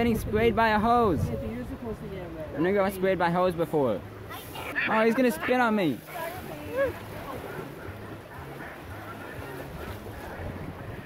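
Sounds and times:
wind on microphone: 0:00.0 - 0:02.6, 0:06.2 - 0:11.0
water wash: 0:00.0 - 0:11.0.

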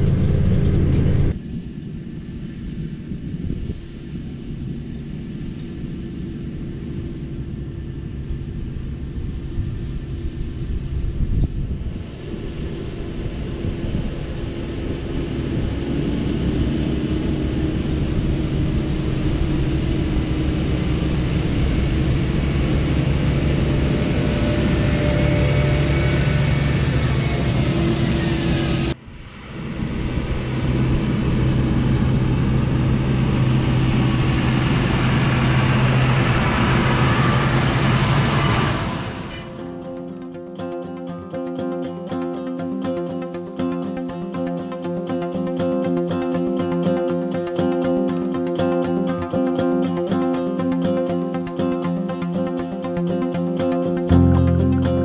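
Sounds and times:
wind buffeting microphone: 0:09.2 - 0:25.5
tractor engines rumbling: 0:30.7 - 0:39.8.

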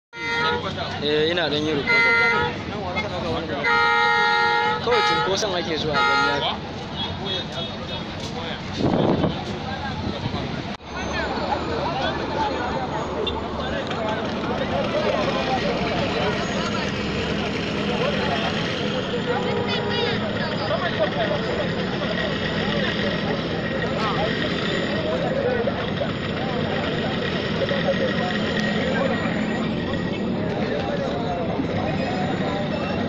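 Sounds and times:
people talking: 0:00.2 - 0:33.0
vehicle engines humming: 0:00.2 - 0:33.0.

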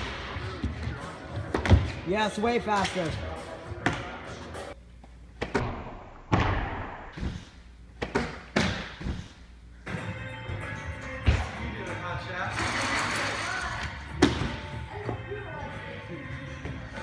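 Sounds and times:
background music with singing: 0:09.8 - 0:17.0.

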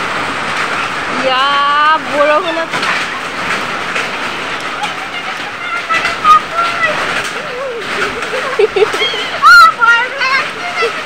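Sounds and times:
rain hissing on ground: 0:00.0 - 0:11.0
faint voices: 0:04.5 - 0:11.0.

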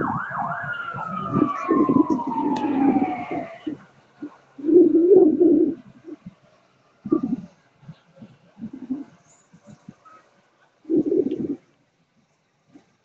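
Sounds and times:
emergency vehicle siren: 0:00.0 - 0:05.5.

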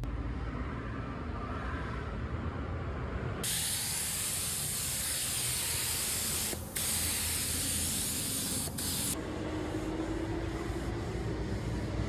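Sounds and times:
spray gun hissing: 0:03.4 - 0:09.2.

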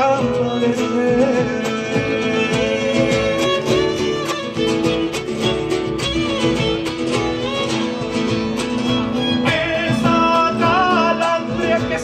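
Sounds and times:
bombo drum beat: 0:00.0 - 0:12.0
strummed acoustic guitars: 0:00.0 - 0:12.0
violin: 0:00.0 - 0:12.0.

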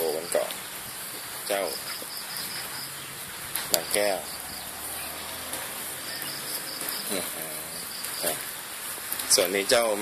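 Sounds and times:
insects chorus: 0:00.0 - 0:10.0.

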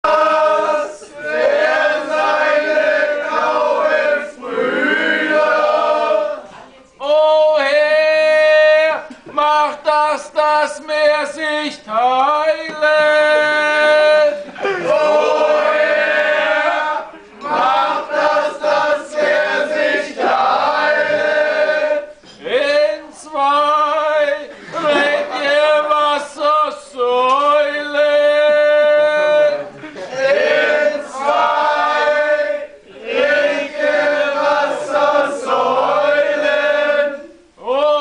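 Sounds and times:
men singing in unison: 0:12.1 - 0:38.0.

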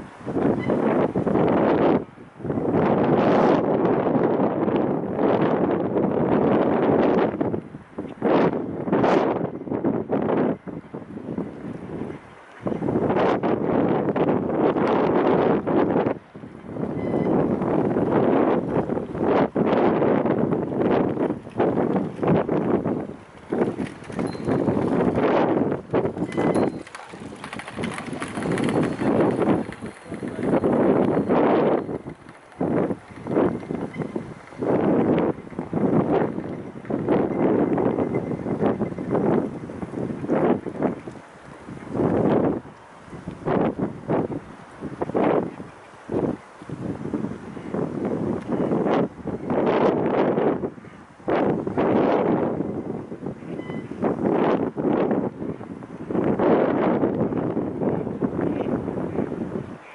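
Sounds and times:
wind buffeting the microphone: 0:00.0 - 0:59.9.

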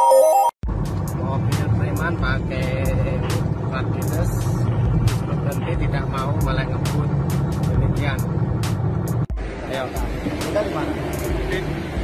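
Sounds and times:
synth jingle: 0:00.0 - 0:00.6
car engine and road rumble: 0:00.6 - 0:12.0.

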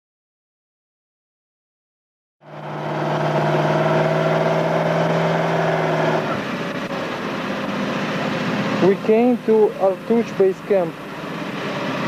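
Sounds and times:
truck engine running: 0:02.4 - 0:12.0.

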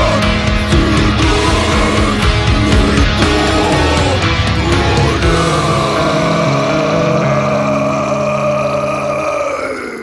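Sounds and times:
metal band held chord: 0:00.0 - 0:09.3.

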